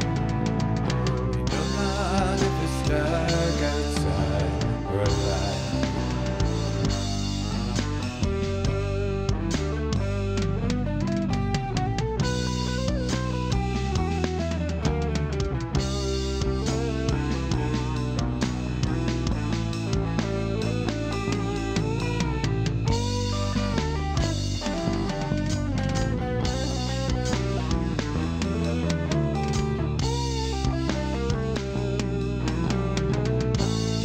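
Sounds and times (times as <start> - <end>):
drums and bass backing: 0.0 - 34.0
electric guitar lead: 0.0 - 34.0.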